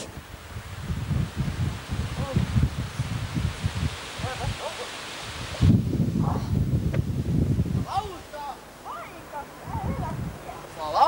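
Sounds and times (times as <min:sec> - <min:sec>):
wind rumbling on microphone: 0:00.0 - 0:08.3, 0:09.2 - 0:11.0
rustling foliage: 0:00.0 - 0:11.0
steady hiss: 0:00.0 - 0:11.0.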